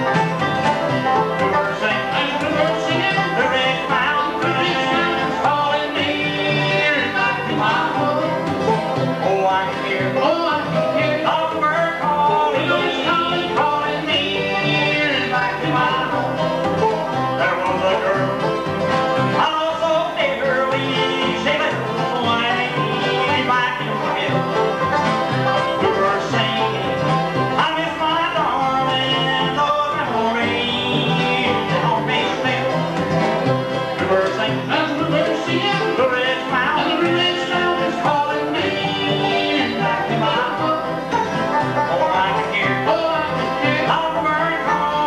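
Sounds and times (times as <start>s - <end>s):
bluegrass band playing: 0.0s - 45.0s.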